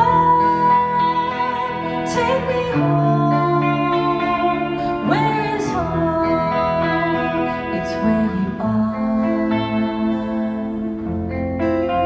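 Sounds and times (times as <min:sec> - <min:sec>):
acoustic guitar: 0:00.0 - 0:12.0
electric guitar sustained notes: 0:00.0 - 0:12.0.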